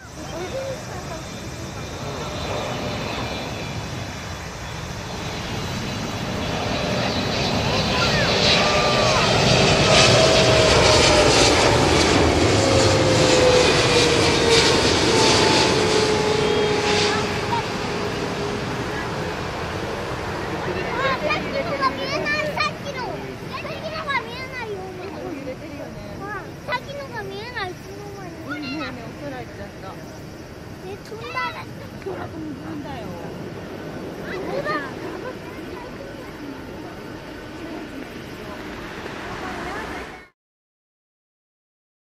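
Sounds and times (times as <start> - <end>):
jet whine falling in pitch: 0.0 - 22.6
jet engine roar: 0.0 - 40.4.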